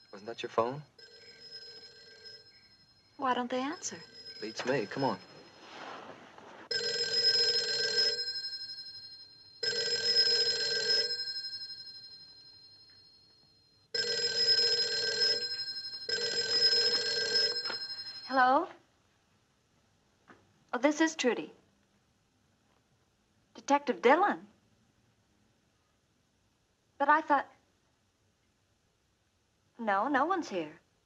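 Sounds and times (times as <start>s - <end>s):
telephone bell ringing: 0.0s - 6.1s, 6.7s - 18.6s.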